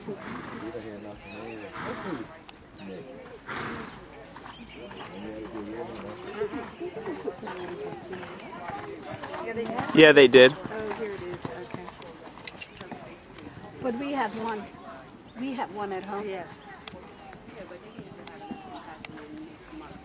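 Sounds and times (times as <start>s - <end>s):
spectators talking quietly: 0.0s - 20.0s
muffled hoofbeats on sand: 3.5s - 20.0s.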